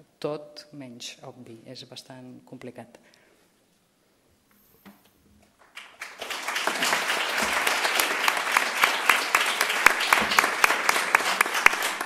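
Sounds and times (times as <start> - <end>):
audience applauding: 5.6 - 12.0.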